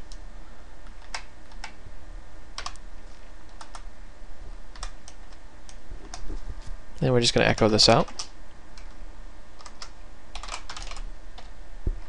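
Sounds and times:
low steady hum: 0:00.0 - 0:12.0
keyboard typing: 0:02.6 - 0:03.9, 0:04.7 - 0:06.3, 0:07.6 - 0:09.0, 0:09.6 - 0:11.5.

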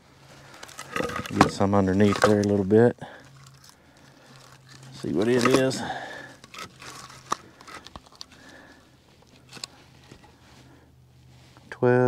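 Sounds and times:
rustling of firewood handling: 0:00.0 - 0:12.0
steady low hum: 0:00.0 - 0:12.0.

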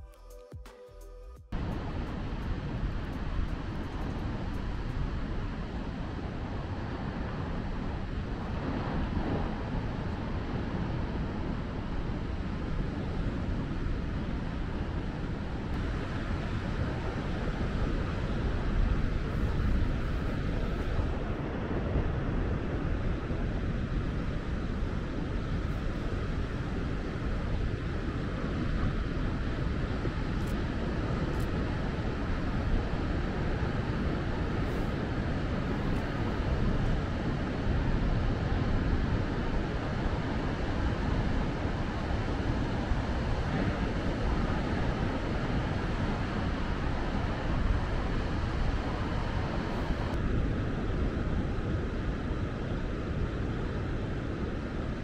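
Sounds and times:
wind noise on microphone: 0:01.5 - 0:55.0.

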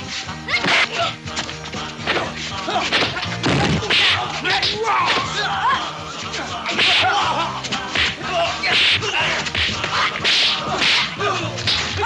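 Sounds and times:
smack of blows: 0:00.6 - 0:05.4, 0:06.7 - 0:12.0.

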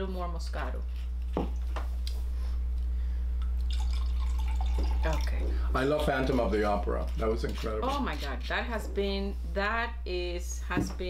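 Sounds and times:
steady low hum: 0:00.0 - 0:11.0
wine pouring into glass: 0:03.6 - 0:05.8.

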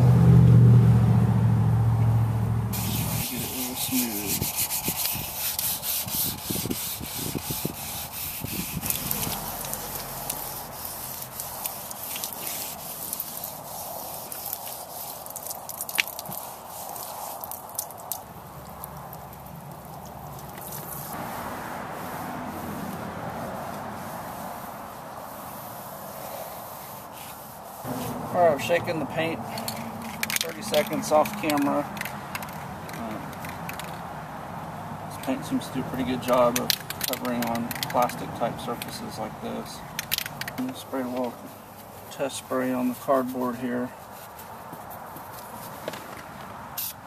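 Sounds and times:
sandpaper scratching on plastic: 0:02.8 - 0:17.6, 0:22.0 - 0:29.0, 0:30.2 - 0:33.2.

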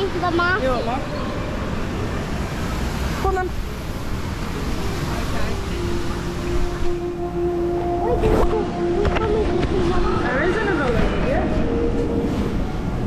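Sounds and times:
steady hum-like tone: 0:00.0 - 0:13.0.

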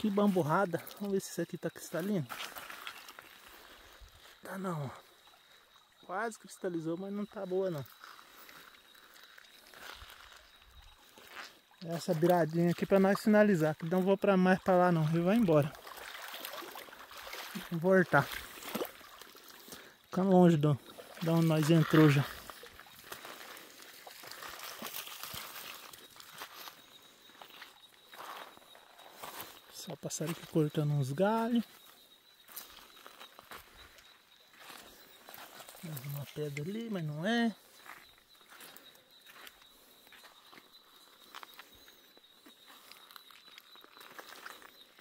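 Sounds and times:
footsteps crunching on stones: 0:01.8 - 0:04.5, 0:07.9 - 0:13.0, 0:20.8 - 0:30.7, 0:37.6 - 0:41.9.

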